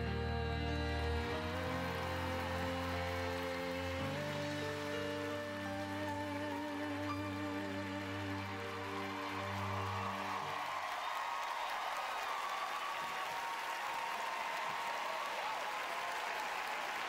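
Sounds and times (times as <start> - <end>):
audience applauding: 0.0 - 17.0.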